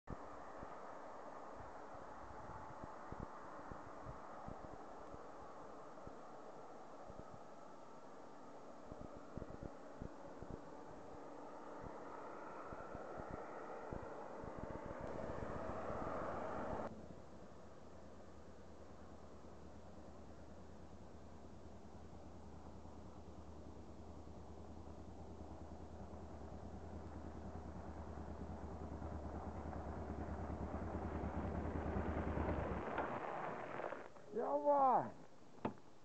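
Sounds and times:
wind on microphone: 1.6s - 5.3s, 8.9s - 11.1s, 11.8s - 16.9s
motorcycle engine running: 9.0s - 16.9s, 18.0s - 34.2s
truck and car passing: 10.7s - 18.8s, 25.1s - 34.1s.

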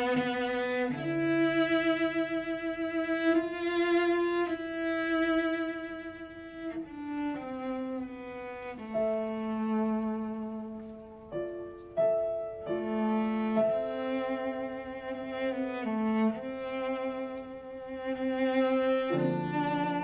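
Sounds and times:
cello playing slow melody: 0.0s - 20.0s
piano accompaniment: 0.0s - 20.0s.

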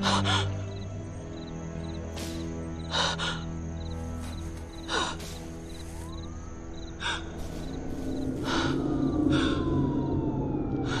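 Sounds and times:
film score music: 0.0s - 11.0s.

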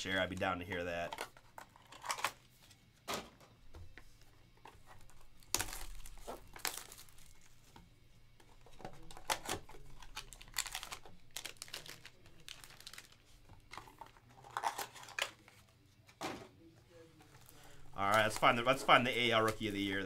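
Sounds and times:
wrapping crinkling and ripping: 4.9s - 7.7s, 8.6s - 15.6s, 17.3s - 20.0s.

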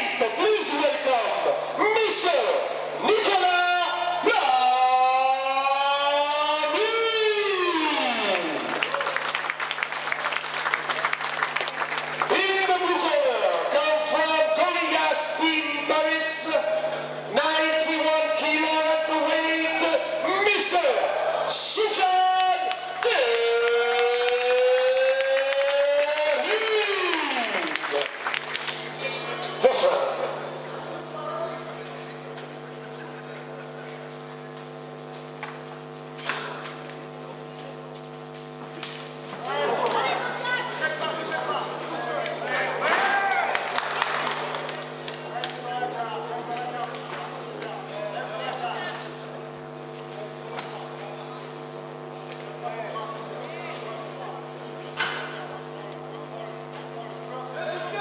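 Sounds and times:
announcer calling over speakers: 0.0s - 8.7s, 12.2s - 28.1s, 29.6s - 31.6s, 39.4s - 43.6s
indistinct voices in a hall: 0.0s - 58.0s
steady low hum: 0.0s - 58.0s
crowd applauding: 7.9s - 13.7s, 22.3s - 29.4s, 42.1s - 45.6s.

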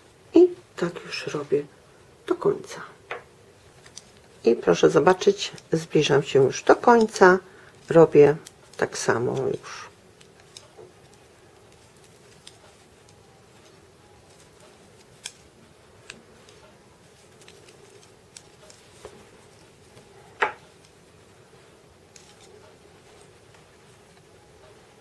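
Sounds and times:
knitting needles clicking: 3.1s - 25.0s.

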